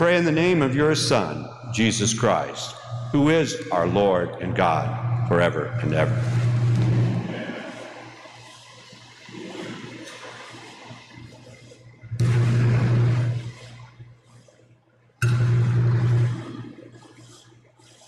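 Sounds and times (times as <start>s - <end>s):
low hum: 0.0s - 14.2s, 15.2s - 17.0s.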